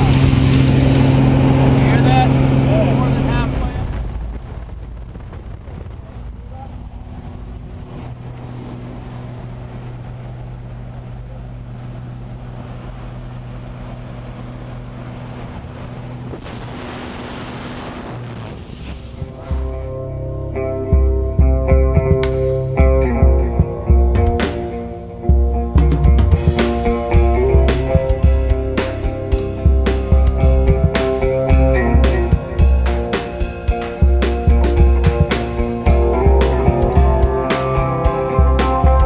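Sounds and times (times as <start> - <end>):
rock guitar music: 0.0 - 3.8, 19.0 - 39.0
propeller plane engine droning: 0.0 - 39.0.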